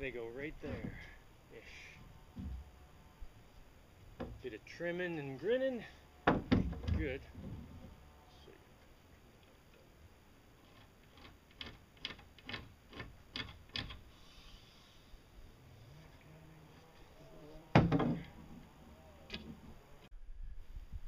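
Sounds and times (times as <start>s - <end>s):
loud thump: 17.7s - 18.4s.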